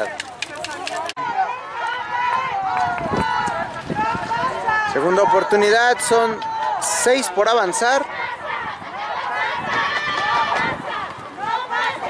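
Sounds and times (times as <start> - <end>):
people calling out: 0.0 - 12.0.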